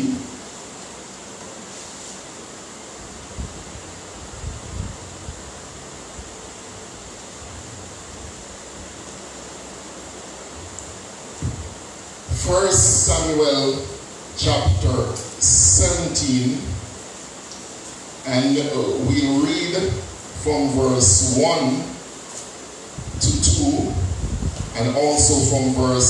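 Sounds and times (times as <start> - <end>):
faint high-pitched whine: 0.0 - 26.0
steady background hiss: 0.0 - 26.0
soft low thumps: 11.4 - 12.5, 23.0 - 23.3.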